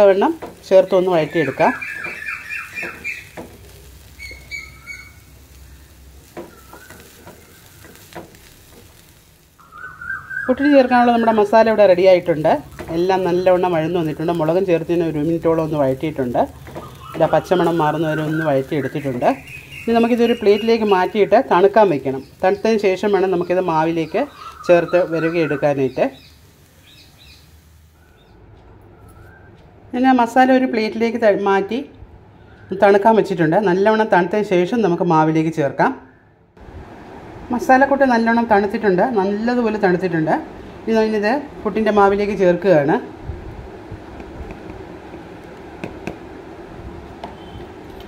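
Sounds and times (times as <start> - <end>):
person speaking: 0.0 - 1.9, 10.5 - 16.6, 17.2 - 26.2
food sizzling in a pan: 0.0 - 28.3, 36.6 - 48.0
faint high chirps: 9.6 - 11.5, 22.2 - 29.7.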